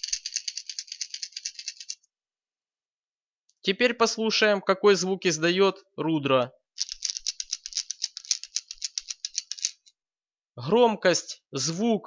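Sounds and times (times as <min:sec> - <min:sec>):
rattle balls in plastic lure: 0:00.0 - 0:02.1, 0:06.8 - 0:10.0.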